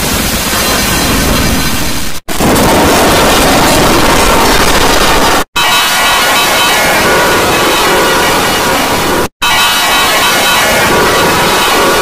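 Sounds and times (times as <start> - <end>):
distorted jingle audio: 3.1 - 12.0
ringing bell-like tones: 5.6 - 12.0.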